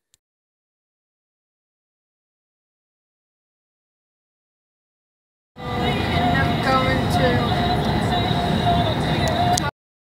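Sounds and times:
loud steady rumble: 0:05.6 - 0:09.7.

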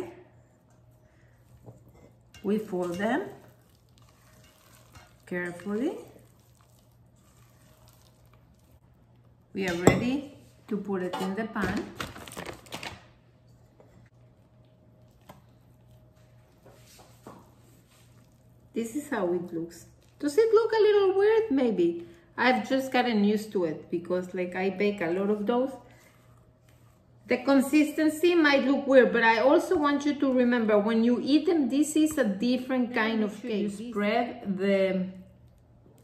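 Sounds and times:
faint steady hum: 0:00.0 - 0:11.4.

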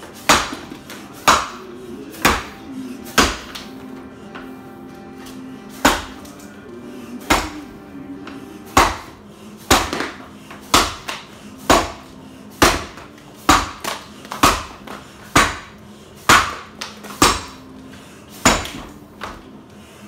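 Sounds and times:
axe chopping log: 0:00.2 - 0:01.6, 0:02.2 - 0:02.5, 0:03.1 - 0:03.7, 0:05.8 - 0:06.3, 0:07.3 - 0:07.7, 0:08.8 - 0:15.7, 0:16.3 - 0:17.6, 0:18.4 - 0:19.4.

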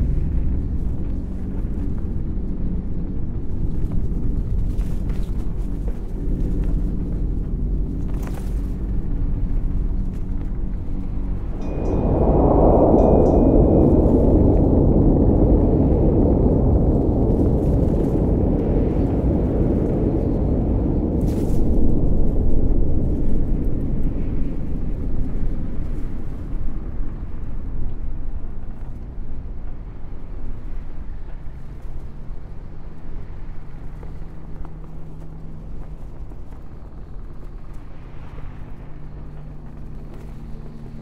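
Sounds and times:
deep steady rumble: 0:00.0 - 0:41.0
wash of noise: 0:11.0 - 0:24.8
faint thin high tone: 0:11.5 - 0:15.2.

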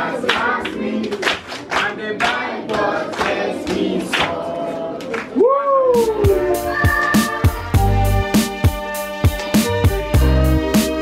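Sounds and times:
children singing together: 0:00.0 - 0:01.3, 0:01.9 - 0:05.0.

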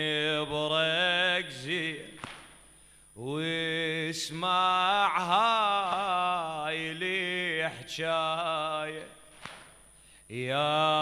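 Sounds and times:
man chanting a lament: 0:00.0 - 0:02.2, 0:03.2 - 0:09.2, 0:10.3 - 0:11.0
sharp click: 0:02.2 - 0:02.5, 0:09.4 - 0:09.8.

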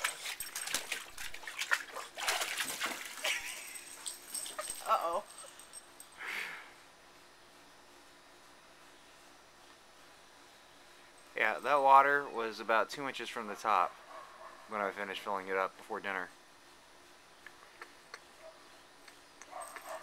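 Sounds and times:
dog splashing in shallow water: 0:00.0 - 0:03.6.

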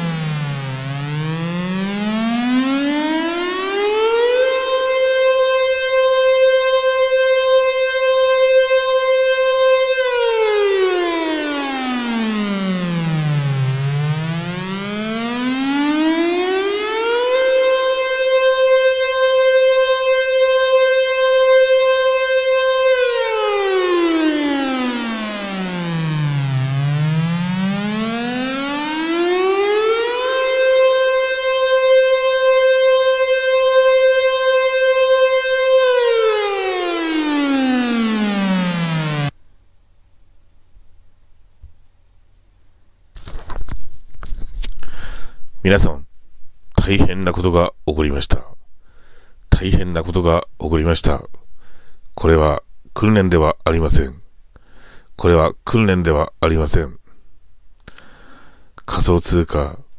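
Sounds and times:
warning siren wailing: 0:00.0 - 0:39.3.

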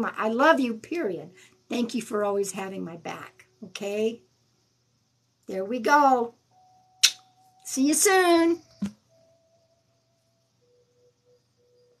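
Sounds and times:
faint pulsing tone: 0:06.3 - 0:12.0
faint thin tone: 0:06.5 - 0:12.0.

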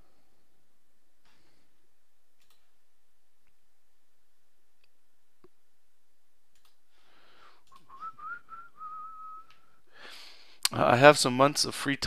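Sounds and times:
person whistling softly: 0:07.7 - 0:09.8.

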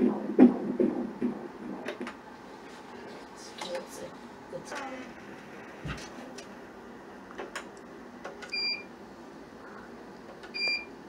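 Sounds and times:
low machine hum: 0:00.0 - 0:11.0.

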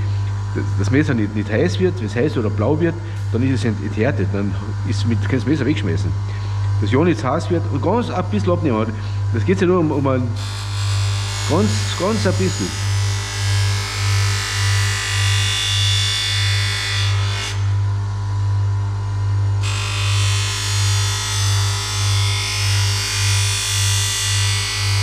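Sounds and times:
bench grinder humming: 0:00.0 - 0:17.8, 0:19.6 - 0:25.0.

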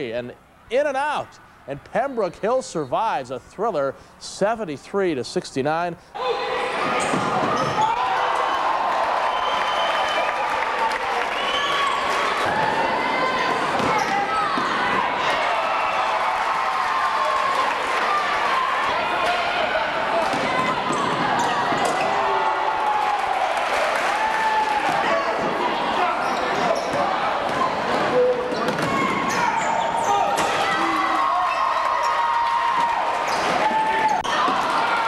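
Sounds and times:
crowd shouting and chattering: 0:06.1 - 0:35.0
sneakers squeaking: 0:06.5 - 0:08.0, 0:13.4 - 0:15.0, 0:20.2 - 0:22.3, 0:25.4 - 0:30.7, 0:33.2 - 0:34.8.

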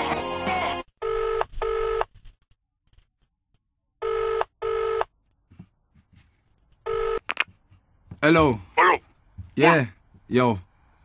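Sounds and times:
telephone ringback tone: 0:01.0 - 0:02.1, 0:04.0 - 0:05.1, 0:06.9 - 0:07.2.

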